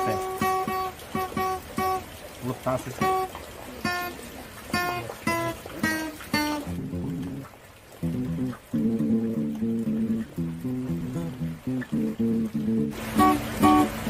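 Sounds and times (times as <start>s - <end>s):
acoustic guitar notes picked: 0.0s - 14.0s.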